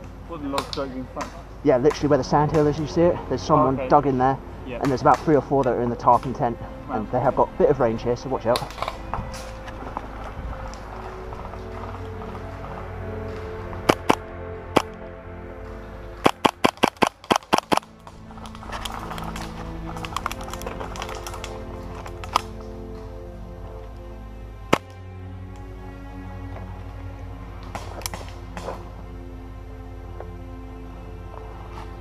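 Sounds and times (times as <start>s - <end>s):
background music: 0.0s - 32.0s
airsoft rifle shots: 16.2s - 17.9s.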